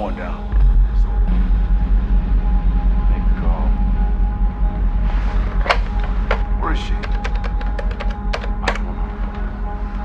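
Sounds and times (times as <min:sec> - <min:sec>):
sustained droning tone: 0:00.0 - 0:10.0
loud low rumble: 0:00.3 - 0:07.0.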